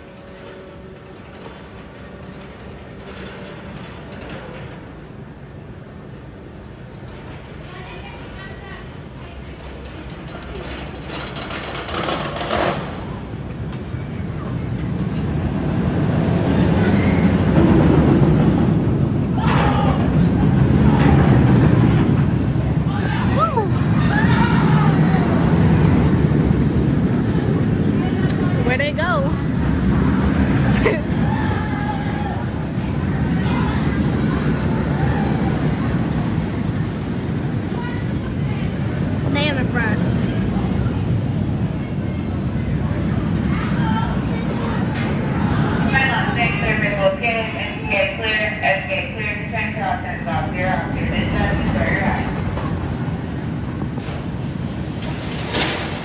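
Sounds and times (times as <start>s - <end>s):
roller coaster rumbling on track: 0.0s - 56.0s
riders screaming and shouting: 16.6s - 17.7s, 19.2s - 21.7s, 22.8s - 25.8s, 30.5s - 36.2s.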